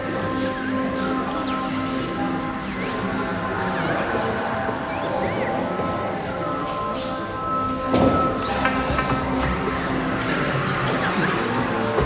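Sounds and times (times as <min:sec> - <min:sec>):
droning tones: 0:00.0 - 0:12.0.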